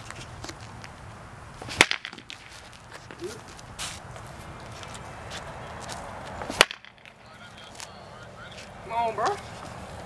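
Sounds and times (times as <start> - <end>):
bat cracking ball: 1.7 - 2.5, 6.4 - 7.2.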